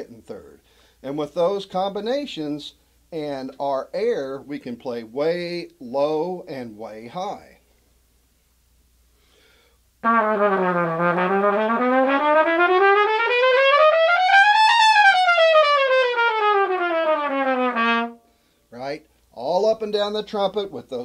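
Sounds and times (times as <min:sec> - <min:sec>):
trumpet playing a range run: 0:10.0 - 0:18.4.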